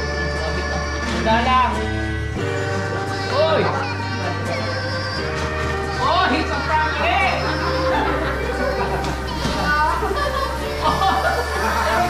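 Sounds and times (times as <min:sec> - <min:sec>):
background music with bass line: 0:00.0 - 0:12.0
people calling out and chattering: 0:00.0 - 0:12.0.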